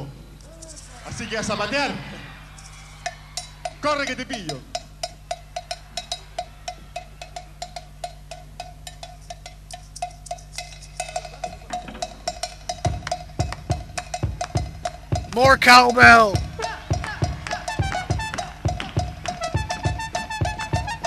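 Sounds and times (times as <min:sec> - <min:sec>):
small percussion ticking beat: 0:00.0 - 0:21.0.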